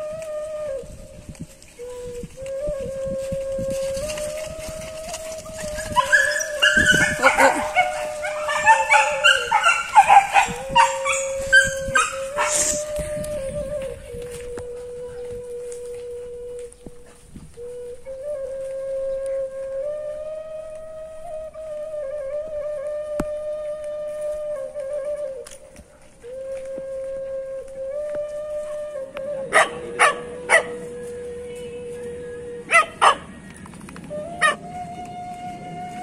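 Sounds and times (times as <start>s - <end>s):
background music with flute note: 0.0s - 36.0s
dogs yelping and howling: 4.2s - 13.0s, 29.4s - 30.9s, 32.6s - 33.5s, 34.4s - 34.7s.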